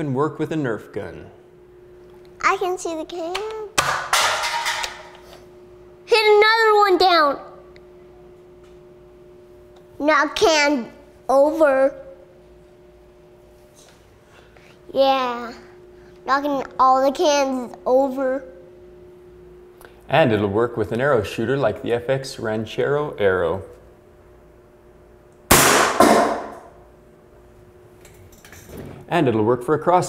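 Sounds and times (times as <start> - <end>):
faint two-tone hum: 0.0 - 30.0
air gun firing crack: 25.5 - 26.7
ringing arrow impact: 25.5 - 26.7.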